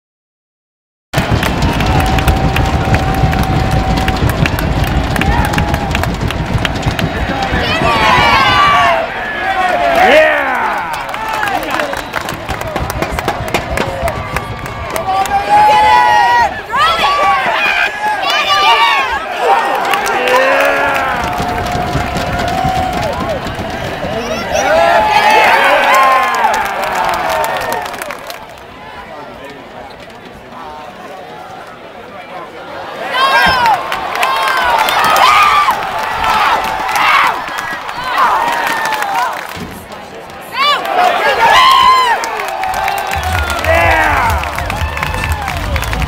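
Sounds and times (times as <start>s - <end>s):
stadium crowd noise: 1.1s - 46.0s
spectators yelling and cheering: 1.2s - 46.0s.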